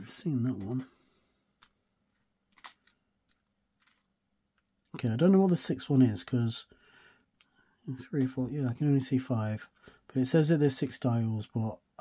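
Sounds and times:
faint clicks of small charms: 1.5s - 5.0s.

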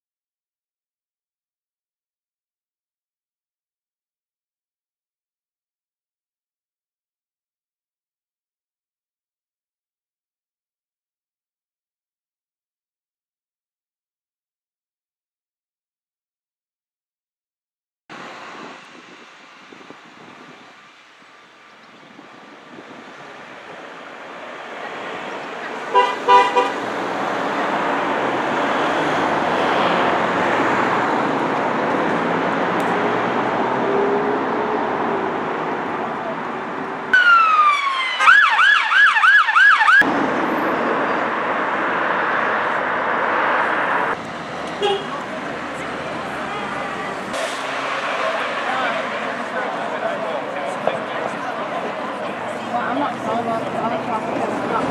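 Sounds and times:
road traffic passing: 18.1s - 54.9s
emergency vehicle siren: 22.2s - 54.7s
car horn: 25.9s - 26.9s, 44.8s - 45.2s, 46.2s - 47.8s.

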